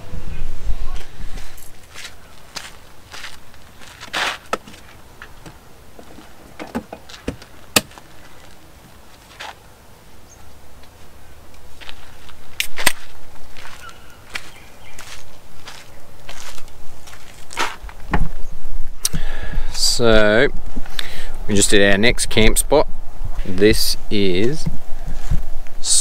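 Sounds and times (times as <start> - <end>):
footsteps on dirt track: 1.0 - 18.4.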